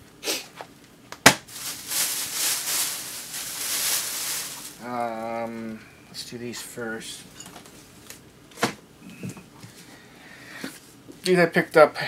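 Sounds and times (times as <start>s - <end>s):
books rustling: 1.5s - 4.9s.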